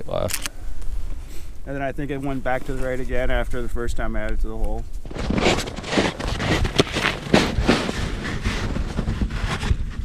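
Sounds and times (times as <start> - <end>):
wind rumble on microphone: 3.2 - 10.0.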